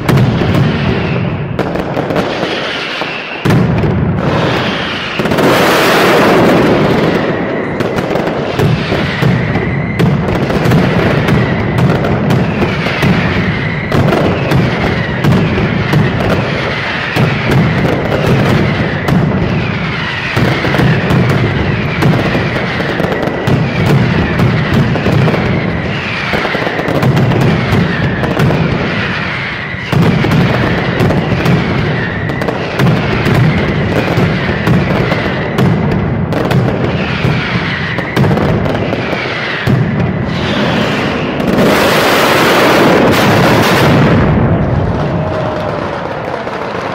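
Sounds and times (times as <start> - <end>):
firecracker bangs: 0.0 - 46.9
whistling fireworks falling in pitch: 0.0 - 46.9.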